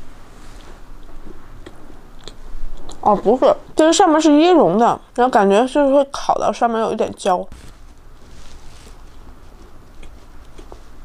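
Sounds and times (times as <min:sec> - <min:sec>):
chewing crumbly pastry: 0:00.6 - 0:03.1, 0:08.9 - 0:11.0
faint crisp crunches: 0:07.5 - 0:11.0.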